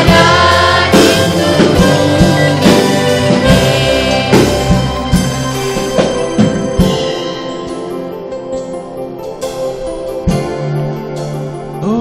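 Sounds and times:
group singing with band: 0.0 - 5.6
drum strokes: 0.0 - 11.1.

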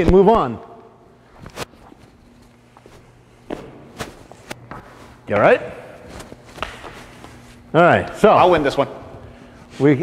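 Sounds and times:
boot footsteps on hard floor: 2.7 - 5.2, 6.0 - 7.6.

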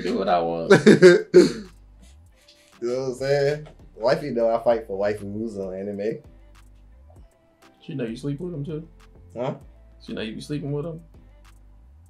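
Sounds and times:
man laughing: 0.0 - 1.7
man talking: 0.0 - 1.7, 2.8 - 6.3, 7.8 - 11.1.

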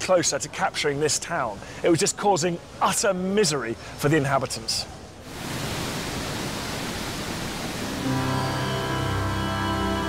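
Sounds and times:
waterfall rushing: 5.2 - 10.0
music with low sustained notes: 8.0 - 10.0.

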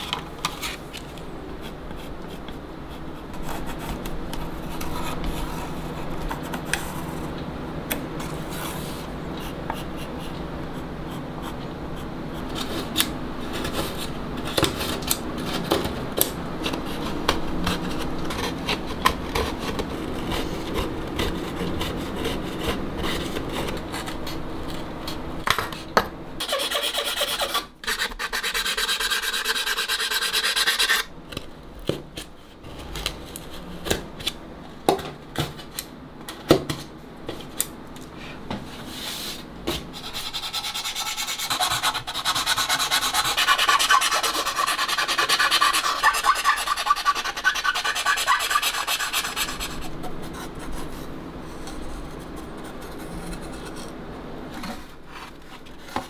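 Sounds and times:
hand tools scraping wood: 40.2 - 49.8.

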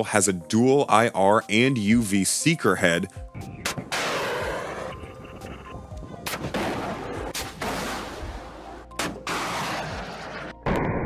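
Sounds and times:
missile launch blasts: 6.2 - 8.4.

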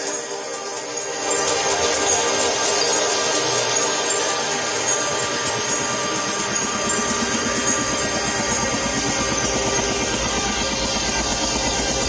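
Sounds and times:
electronic trance music: 0.0 - 12.0.

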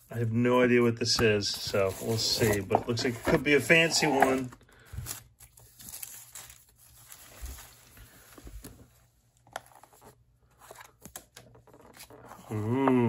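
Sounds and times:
tissue paper rustling and crinkling: 1.6 - 10.1.

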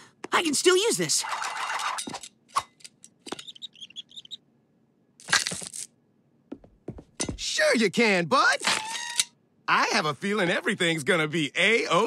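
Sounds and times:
high chirping blips: 3.4 - 4.4.

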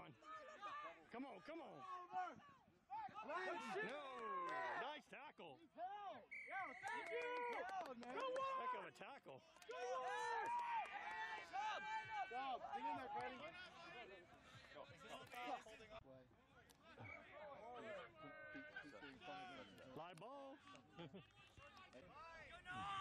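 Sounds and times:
players shouting across a field: 0.0 - 4.9, 9.6 - 15.6, 20.5 - 23.0.

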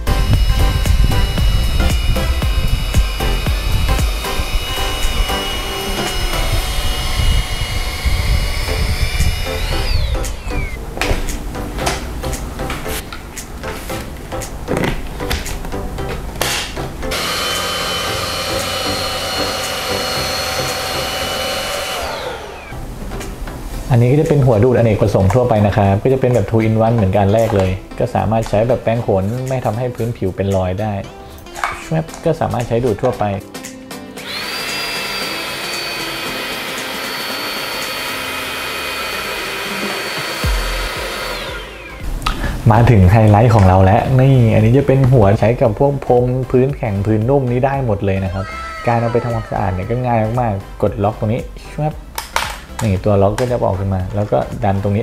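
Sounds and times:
handheld vacuum motor whine: 0.0 - 10.8, 17.1 - 22.8, 34.2 - 42.1.

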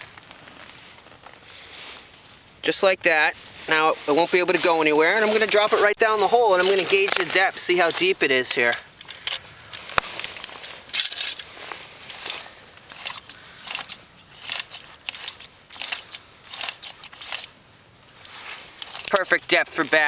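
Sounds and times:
fishing line spool rustling: 0.0 - 20.0.

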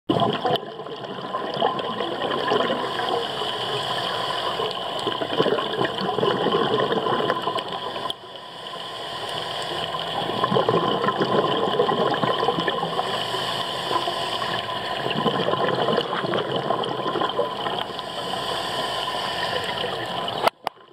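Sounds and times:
fine crackling underwater: 0.1 - 20.9
underwater rush of water: 0.1 - 20.9.

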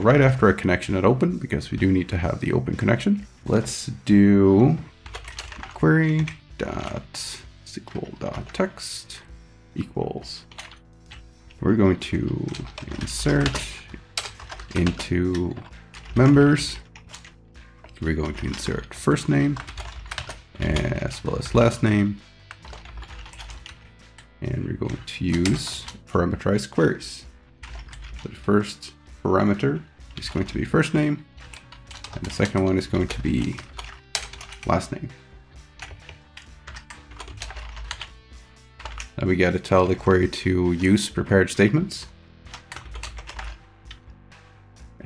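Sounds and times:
soft background music: 0.0 - 45.0.

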